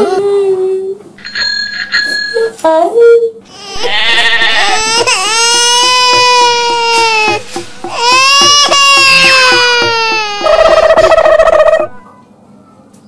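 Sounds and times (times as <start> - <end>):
loud wailing cry: 3.7 - 11.9.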